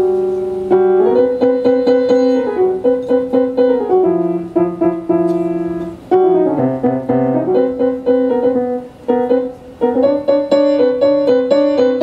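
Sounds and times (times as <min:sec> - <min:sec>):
solo piano improvisation: 0:00.0 - 0:12.0.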